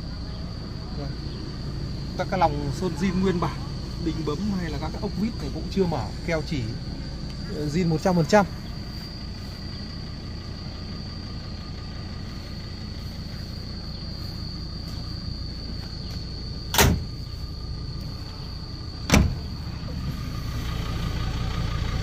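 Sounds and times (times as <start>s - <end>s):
diesel engine idling: 0.0s - 22.0s.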